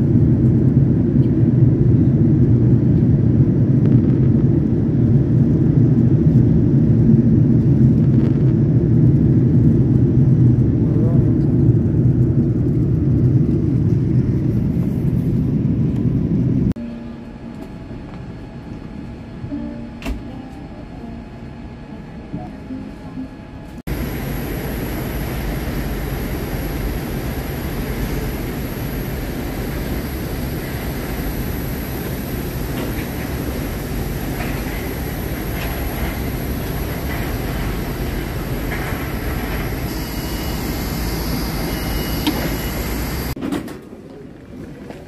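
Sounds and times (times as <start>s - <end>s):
high engine whine: 0.0s - 43.4s
jet engine roar in cabin: 0.0s - 45.0s.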